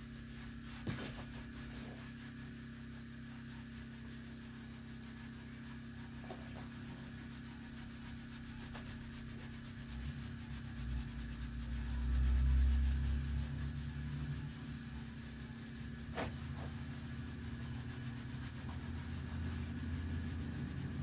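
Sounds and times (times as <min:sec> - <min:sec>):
cloth wiping metal stove: 0:00.0 - 0:21.0.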